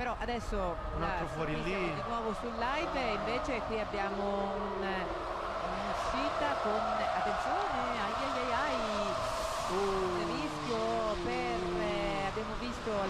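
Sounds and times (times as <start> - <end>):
commentators talking: 0.0 - 13.0
race cars: 0.0 - 13.0.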